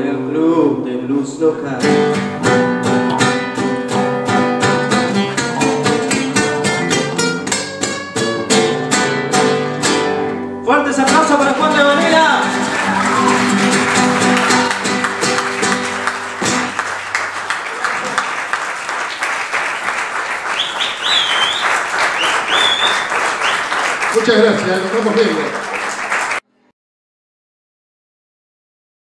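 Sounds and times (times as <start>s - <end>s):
audience applauding: 4.7s - 7.6s, 11.1s - 26.4s
cheering voices: 11.1s - 26.4s
shrill whistles: 20.4s - 24.1s.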